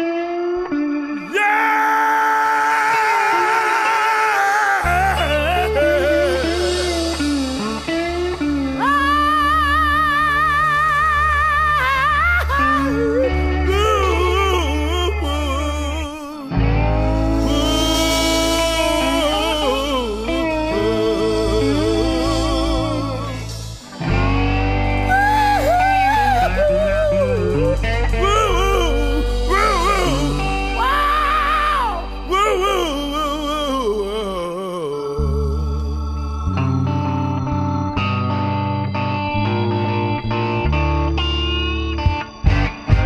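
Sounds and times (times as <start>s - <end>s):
lead guitar bending notes: 0.0s - 4.0s, 4.8s - 43.0s
electric blues band playing: 0.0s - 43.0s
bass: 4.8s - 43.0s.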